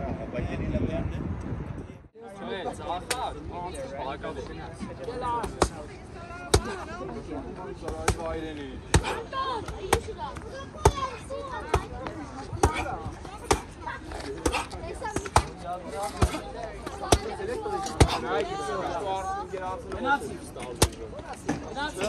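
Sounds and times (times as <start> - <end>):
people talking: 2.2 - 22.0.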